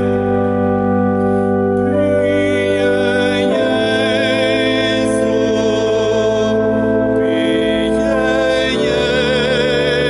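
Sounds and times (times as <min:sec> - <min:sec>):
church organ sustained chord: 0:00.0 - 0:10.0.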